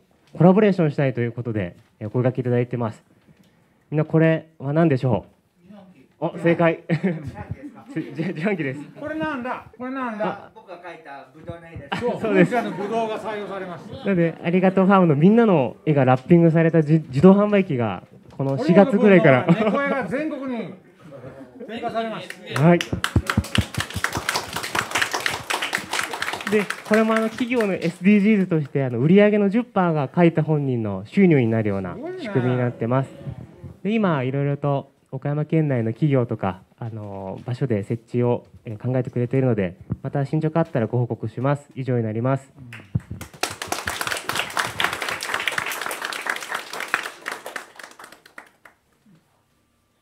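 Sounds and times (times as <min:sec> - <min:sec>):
group of people clapping: 0:22.2 - 0:28.8, 0:42.7 - 0:49.0.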